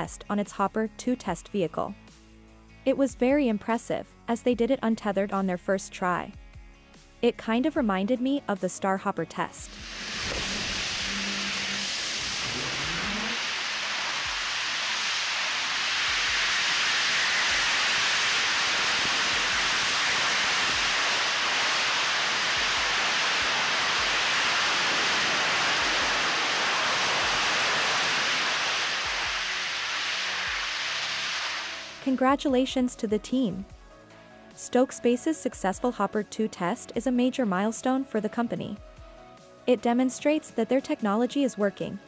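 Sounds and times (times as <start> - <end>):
rocket engine roar: 9.6 - 32.1.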